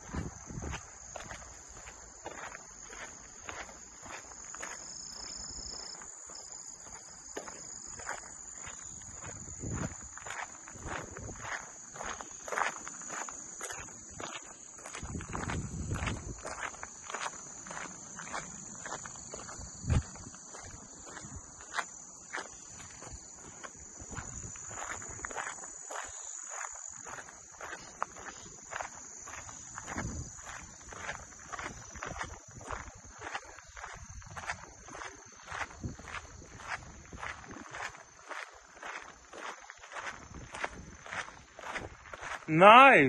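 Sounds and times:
footsteps in dry weeds: 0.0 - 42.6
high insect chorus: 0.0 - 43.0.

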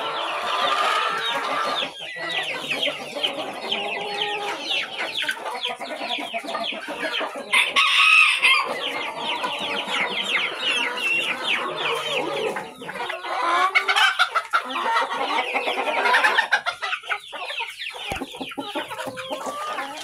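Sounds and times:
chickens clucking and calling: 0.0 - 20.0.

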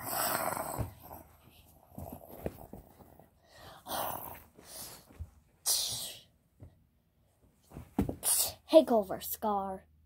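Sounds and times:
child growling and hissing: 0.0 - 1.0
plush toys rustling and tapping: 0.6 - 3.4, 4.3 - 6.8, 7.4 - 8.5.

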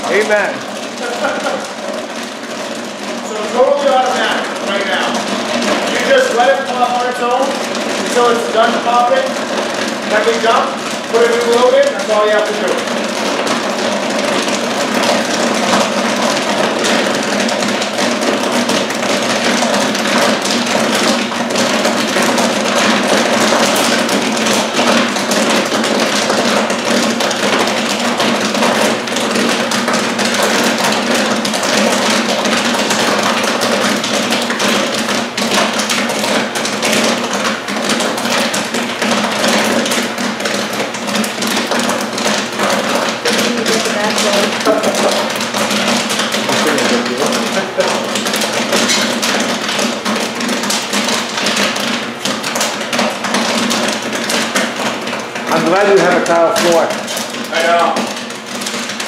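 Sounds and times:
popcorn kernels popping: 0.0 - 59.0.

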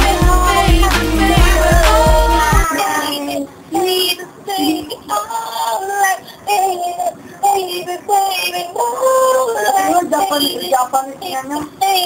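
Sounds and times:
pop song with high singing voice: 0.0 - 12.0.

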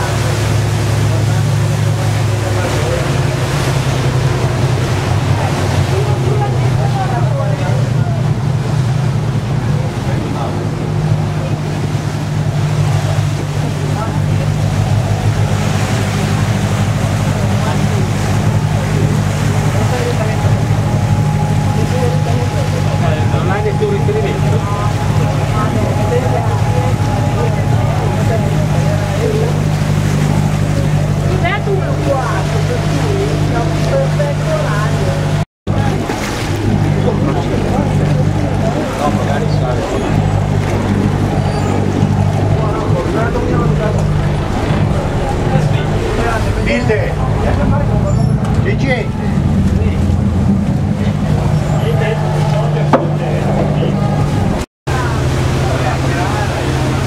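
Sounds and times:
ferry engine droning: 0.0 - 57.0
passengers talking: 0.0 - 57.0.

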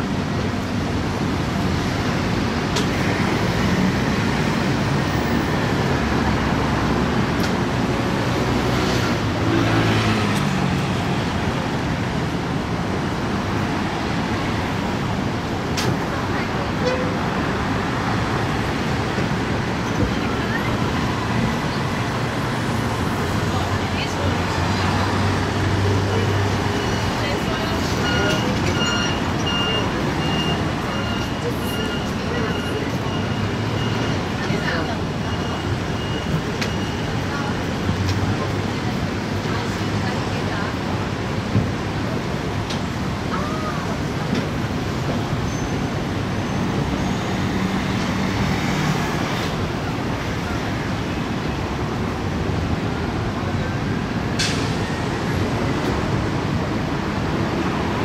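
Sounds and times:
city road traffic: 0.0 - 58.0.

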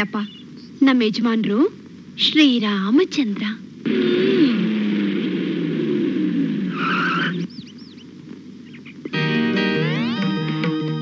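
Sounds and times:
vehicle engine droning: 3.8 - 7.6
high squeal: 6.7 - 7.5.

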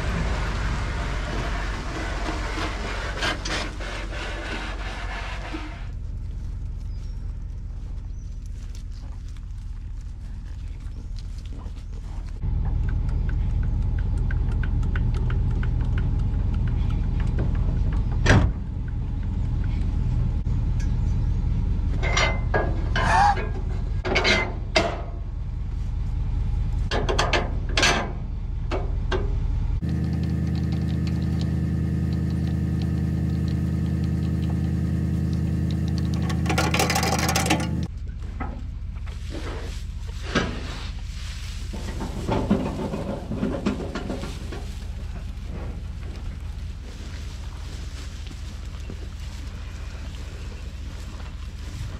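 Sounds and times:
vehicle engine running: 0.0 - 51.9
metal clanks from hitch: 22.0 - 25.2.

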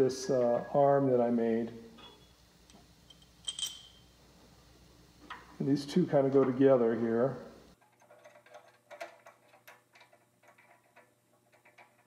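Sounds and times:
light metallic clinks: 2.0 - 4.1.

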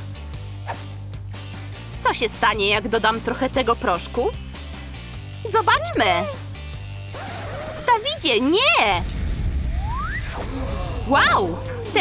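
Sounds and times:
background music: 0.0 - 12.0
low rumble with rising whistle: 9.2 - 11.0
bright shimmering chime: 10.2 - 11.2.

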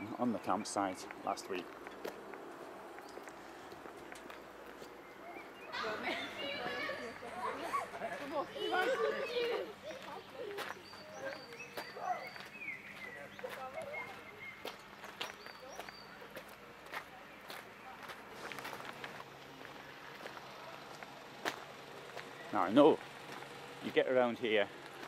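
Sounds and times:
footsteps on gravel: 0.2 - 24.0
high bird calls: 3.0 - 16.4.

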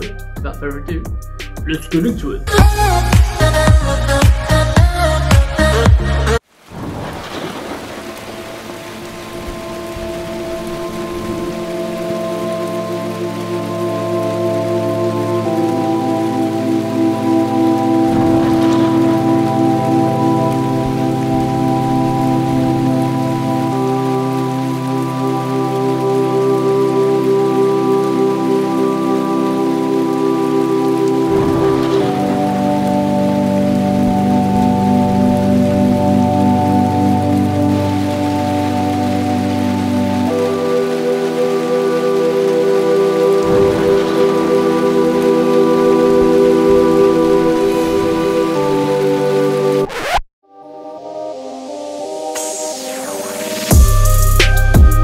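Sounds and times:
steady rain falling: 1.9 - 50.0, 51.0 - 55.0
ambient music sustained chords: 7.3 - 55.0.

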